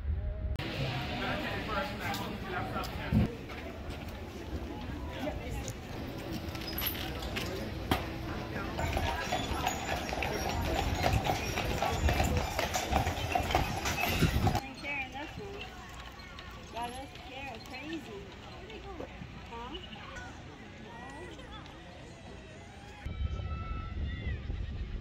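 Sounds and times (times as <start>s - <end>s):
murmur of people talking: 0.4s - 23.5s
horse hooves clip-clopping on pavement: 1.2s - 20.3s.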